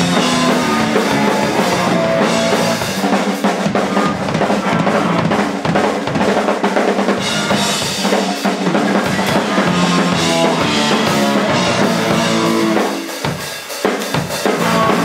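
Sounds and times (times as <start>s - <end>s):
electric guitar: 0.0s - 6.3s, 7.0s - 13.3s, 14.4s - 15.0s
drum kit: 0.0s - 15.0s
rock band playing: 0.0s - 15.0s.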